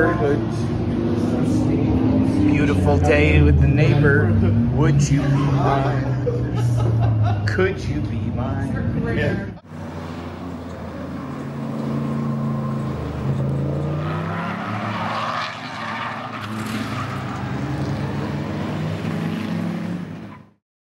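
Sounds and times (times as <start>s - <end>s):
car passing rush: 0.0s - 20.6s
race car engines: 0.0s - 20.6s.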